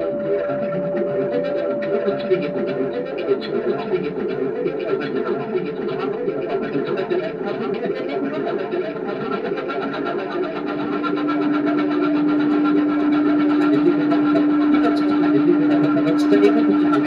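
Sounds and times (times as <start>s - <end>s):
held synthesizer tone: 0.0s - 8.0s, 9.8s - 17.0s
buzzing synthesizer texture: 0.0s - 17.0s.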